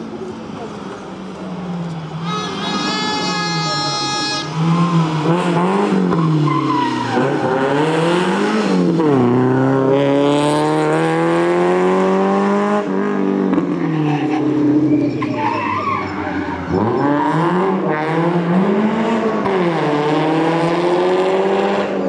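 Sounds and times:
tyres squealing: 0:02.2 - 0:05.0, 0:14.1 - 0:17.0
car engine revving hard: 0:04.4 - 0:14.8, 0:16.7 - 0:22.0.

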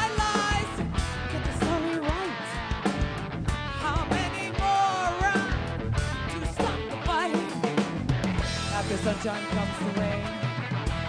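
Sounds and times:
electric guitar: 0:00.0 - 0:11.0
rock band playing: 0:00.0 - 0:11.0.

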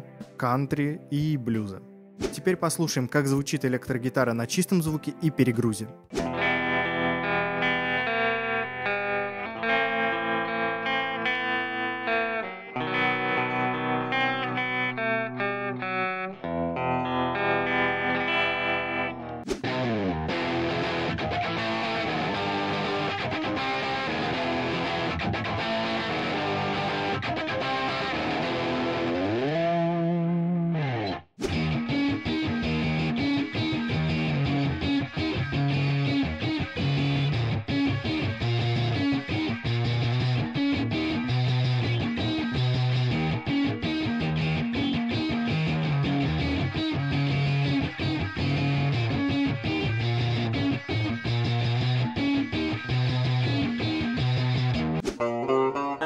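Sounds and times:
electric guitar playing: 0:05.9 - 0:56.0
distorted guitar with pitch bends: 0:06.2 - 0:56.0.

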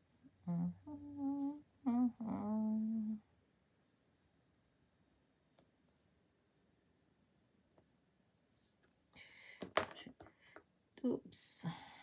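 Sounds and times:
woman humming: 0:00.3 - 0:03.3.

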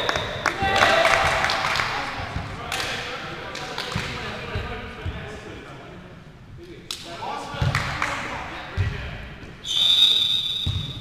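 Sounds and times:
ball thumps echoing: 0:07.5 - 0:07.9, 0:10.6 - 0:11.0.

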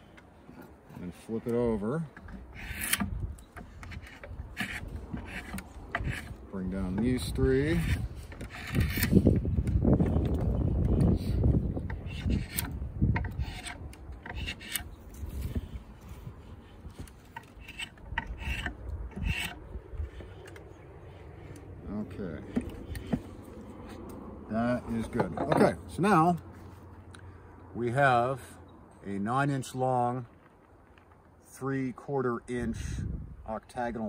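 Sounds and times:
draw knife shaving wood: 0:02.2 - 0:07.1, 0:17.0 - 0:20.4.

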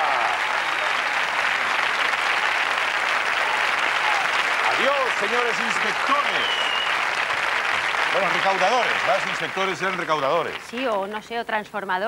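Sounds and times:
audience applauding: 0:00.0 - 0:11.2.

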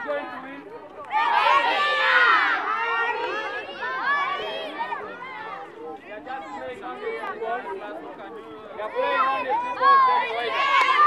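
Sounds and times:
children shouting and talking: 0:00.0 - 0:11.0.

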